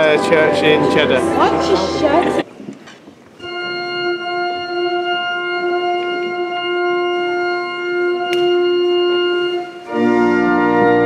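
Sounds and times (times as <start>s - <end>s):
church organ holding a note: 0.0s - 2.4s, 3.4s - 11.0s.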